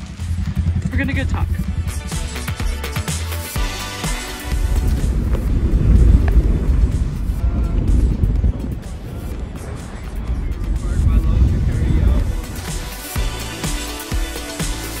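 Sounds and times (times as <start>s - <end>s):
faint background music: 0.0s - 15.0s
wind buffeting microphone: 4.4s - 13.0s.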